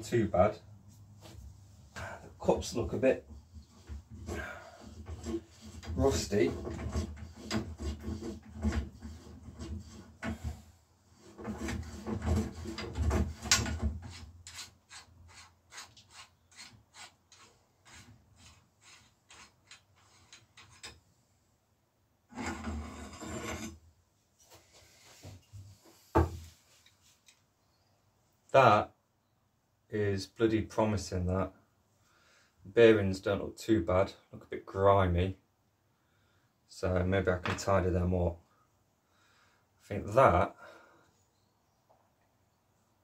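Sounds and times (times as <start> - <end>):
gritty metal scraping: 2.4 - 21.0, 22.3 - 23.8.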